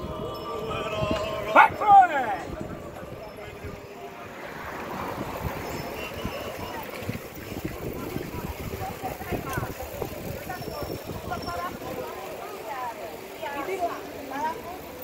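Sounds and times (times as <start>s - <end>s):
wind noise: 0.0s - 1.8s, 2.4s - 12.0s
bicycle road noise: 0.0s - 15.0s
cyclists calling out: 0.0s - 15.0s.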